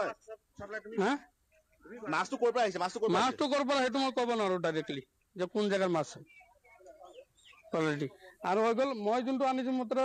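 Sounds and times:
man talking: 0:00.0 - 0:06.2, 0:07.7 - 0:10.0.

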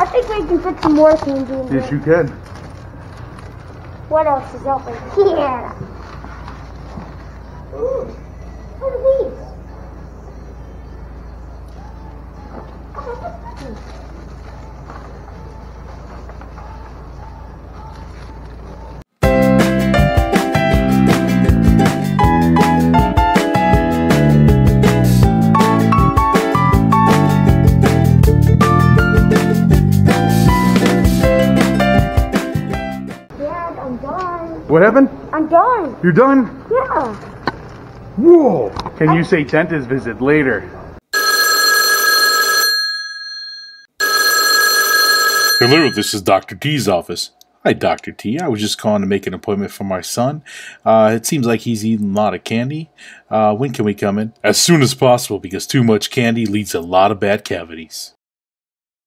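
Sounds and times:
telephone ringing: 0:41.1 - 0:46.2.

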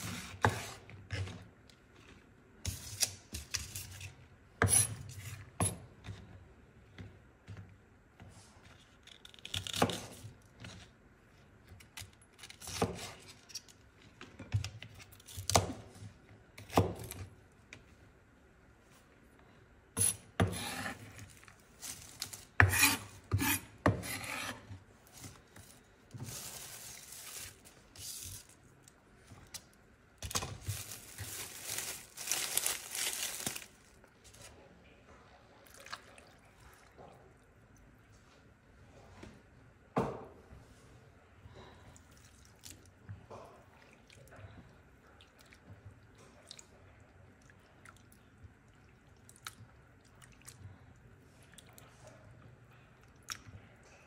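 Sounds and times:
knife chopping on cutting board: 0:22.6 - 0:24.6.

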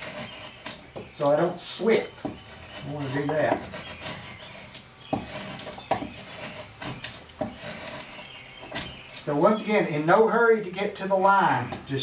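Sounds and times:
drawknife shaving wood: 0:00.0 - 0:09.4.

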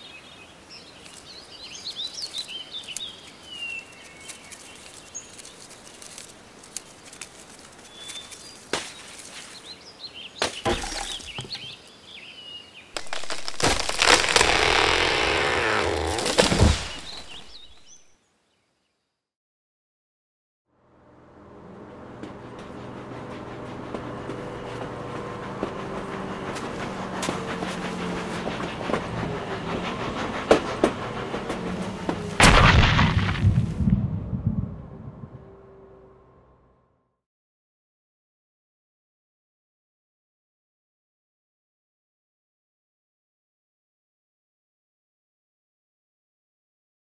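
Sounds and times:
birds chirping: 0:00.0 - 0:19.1.

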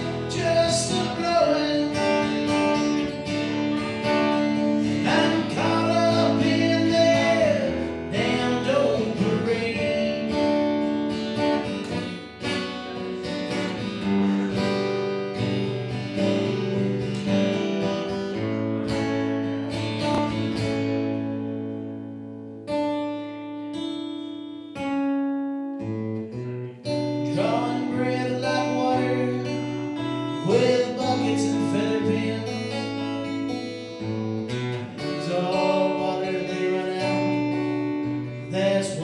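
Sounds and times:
acoustic guitar chords: 0:00.0 - 0:39.0.

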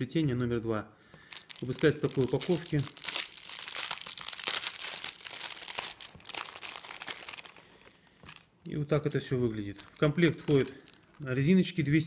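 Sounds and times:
packaging crinkling: 0:01.2 - 0:11.4.

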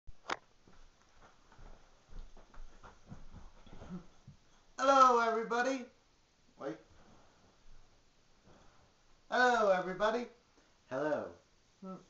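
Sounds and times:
soft footsteps: 0:00.2 - 0:04.7, 0:06.9 - 0:09.2
person sitting on couch: 0:00.2 - 0:12.0.

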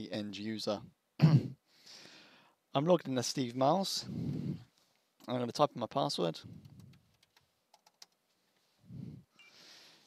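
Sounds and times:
faint keyboard keystrokes: 0:06.6 - 0:08.2.

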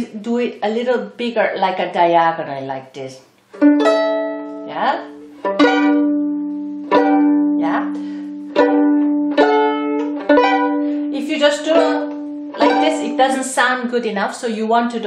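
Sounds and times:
violin pizzicato chords: 0:03.4 - 0:13.8.

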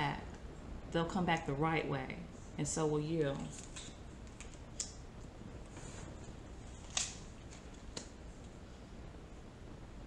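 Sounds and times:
cards being handled clicking: 0:03.4 - 0:05.0, 0:06.8 - 0:08.5.

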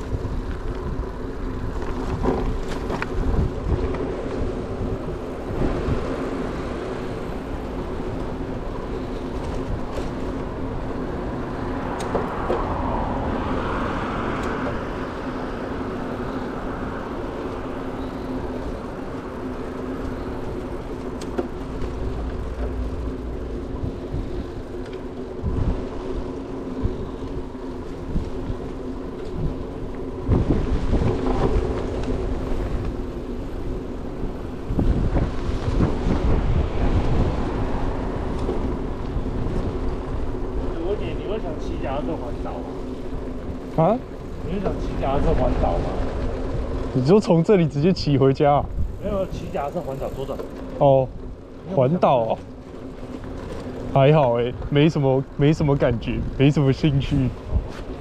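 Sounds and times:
road traffic noise: 0:00.0 - 0:58.0
wind buffeting microphone: 0:00.0 - 0:58.0.

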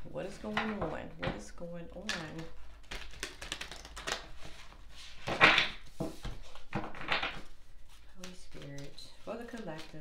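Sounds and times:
cards being shuffled: 0:02.1 - 0:10.0.

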